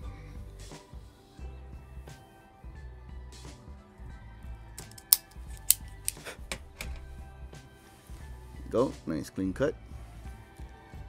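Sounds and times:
soft background music: 0:00.0 - 0:11.0
cigar cutter snapping: 0:04.8 - 0:07.0.

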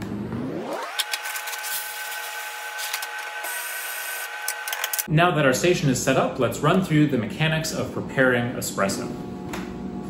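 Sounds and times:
grinder motor whine: 0:00.0 - 0:05.1.

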